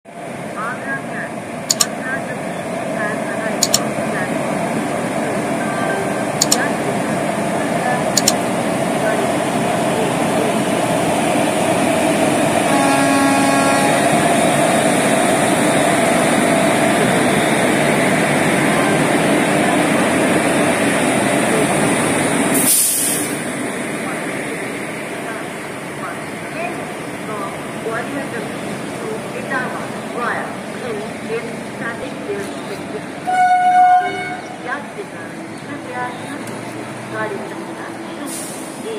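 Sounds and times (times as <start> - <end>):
train wheels rumbling on rails: 0.2 - 38.9
sharp clicks: 1.7 - 2.0, 3.6 - 3.9, 6.4 - 6.7, 8.1 - 8.4
train horn note: 12.6 - 14.2, 33.2 - 34.5.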